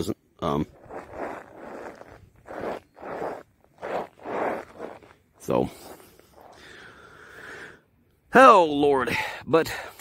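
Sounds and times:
footsteps crunching on icy snow: 0.6 - 6.6.

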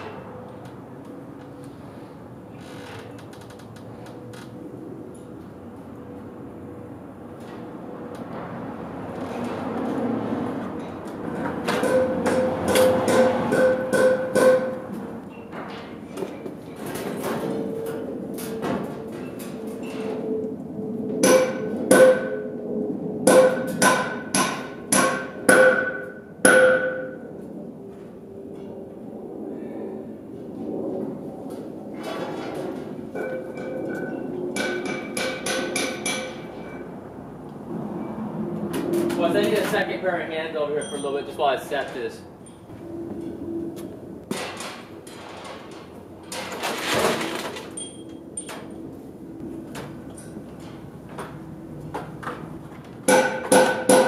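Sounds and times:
hammer striking metal: 11.7 - 14.8, 21.2 - 22.4, 23.3 - 27.2, 33.2 - 36.8, 53.1 - 54.0.

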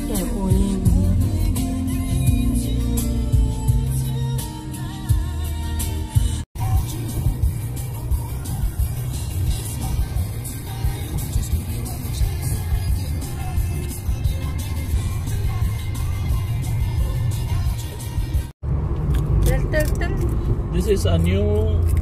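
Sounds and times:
car road and engine rumble: 0.0 - 22.0.

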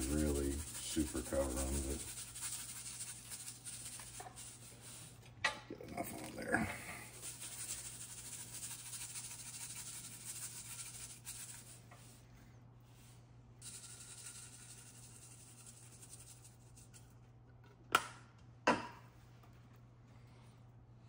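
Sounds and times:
seasoning pattering onto meat: 0.0 - 5.2, 7.0 - 12.0, 13.6 - 17.0
seasoning shaker rattling: 0.0 - 5.2, 7.0 - 12.2, 13.6 - 17.1
steady low hum: 0.0 - 17.7.

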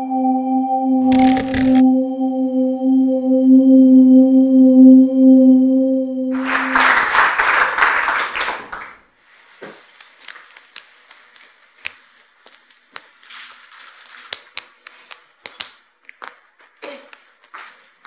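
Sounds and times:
audience applause: 6.4 - 9.0
juggling balls slapping hands: 9.8 - 13.2, 14.3 - 18.0.

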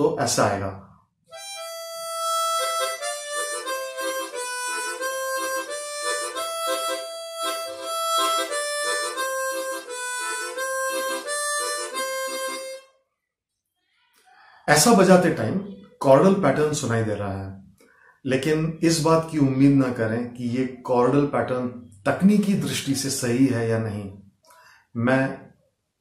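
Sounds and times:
tongue slapping harmonica chords: 1.3 - 12.9
chromatic harmonica melody: 1.3 - 13.0.

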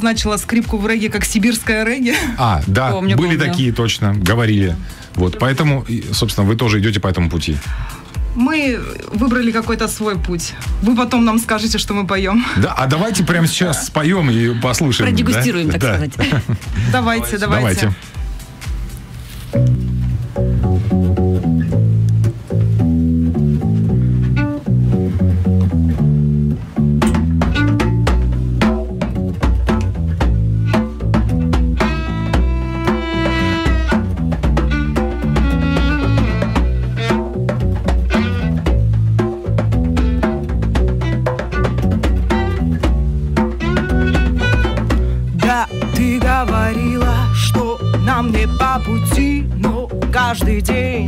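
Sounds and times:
electric bass guitar line: 19.6 - 51.0
violin wavering melody: 20.4 - 28.7, 29.7 - 39.2, 39.8 - 49.8
hand drum strikes: 26.6 - 51.0.

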